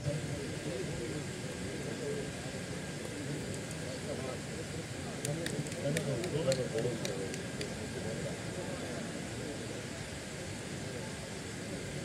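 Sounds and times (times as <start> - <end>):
indistinct chatter of voices: 0.0 - 12.0
steady background hiss: 0.0 - 12.0.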